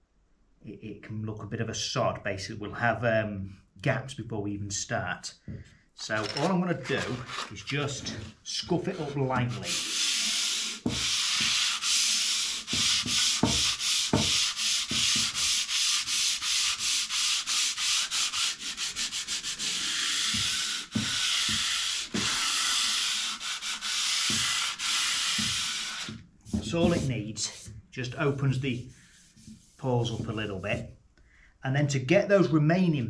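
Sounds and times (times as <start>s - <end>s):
sandpaper rubbing on wood: 8.8s - 27.7s, 28.3s - 30.9s.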